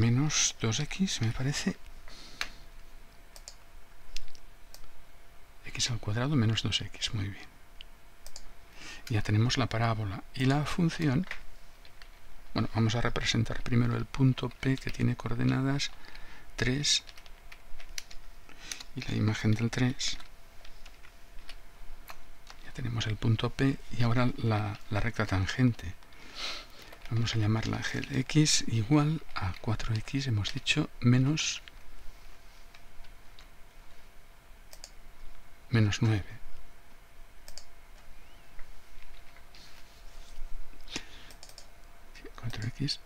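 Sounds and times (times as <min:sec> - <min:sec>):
computer keyboard typing: 0:03.4 - 0:03.6, 0:13.0 - 0:22.7, 0:26.7 - 0:30.7, 0:34.7 - 0:35.0, 0:37.5 - 0:37.7, 0:41.2 - 0:41.7
computer mouse click: 0:03.4 - 0:04.9, 0:08.2 - 0:08.5, 0:34.7 - 0:35.0, 0:37.5 - 0:38.1, 0:40.9 - 0:41.7.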